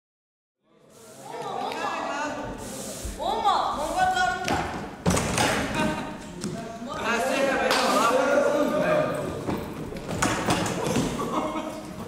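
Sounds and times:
voices calling out in a hall: 0:00.6 - 0:12.0
running footsteps on hall floor: 0:08.5 - 0:12.0.

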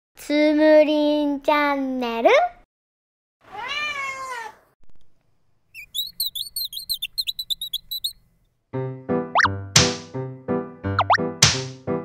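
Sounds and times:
cat meowing: 0:03.5 - 0:04.7
fast high chirps: 0:05.7 - 0:08.2.

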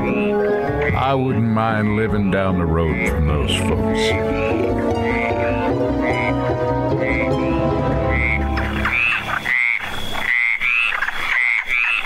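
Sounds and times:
music bed: 0:00.0 - 0:09.9
frogs croaking: 0:00.0 - 0:12.0.

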